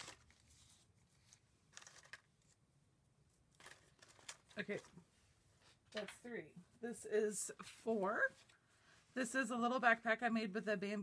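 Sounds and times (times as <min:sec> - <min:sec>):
paper rustling: 0:00.0 - 0:02.6, 0:03.4 - 0:05.0.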